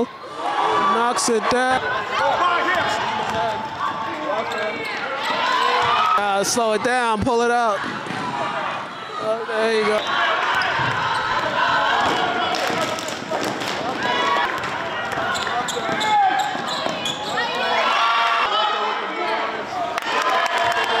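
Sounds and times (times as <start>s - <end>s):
people shouting and chattering: 0.0s - 21.0s.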